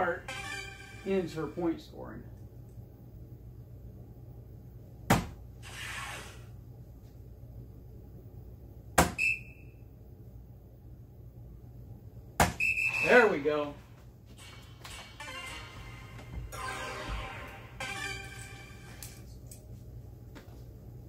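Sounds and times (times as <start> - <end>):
darts striking dartboard: 5.1 - 5.4, 9.0 - 9.2, 12.4 - 12.6.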